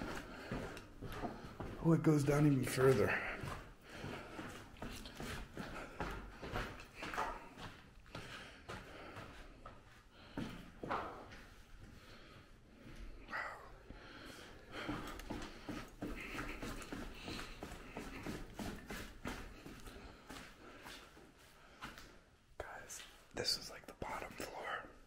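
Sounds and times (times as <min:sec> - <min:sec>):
footsteps on gritty steps: 0:00.0 - 0:13.1, 0:13.9 - 0:22.2
whispered talk: 0:22.6 - 0:25.0.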